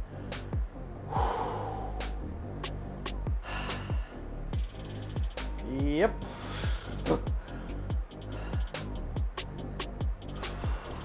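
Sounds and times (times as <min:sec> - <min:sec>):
man breathing hard: 0:00.0 - 0:02.4, 0:03.3 - 0:04.4, 0:06.2 - 0:09.2, 0:10.3 - 0:11.0
music with steady drum beat: 0:00.0 - 0:11.0.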